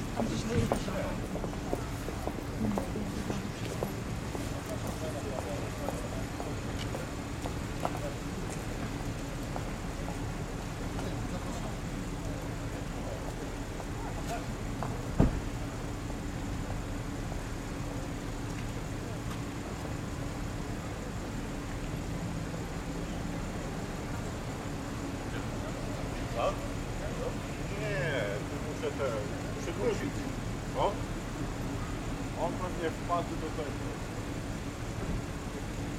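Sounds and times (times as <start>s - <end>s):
car engines idling: 0.0s - 35.9s
loud thump: 15.1s - 15.5s.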